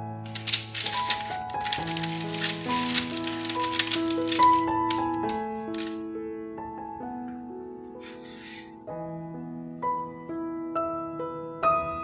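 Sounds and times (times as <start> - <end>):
spatula scraping parchment paper: 0.3 - 4.6, 8.0 - 8.7.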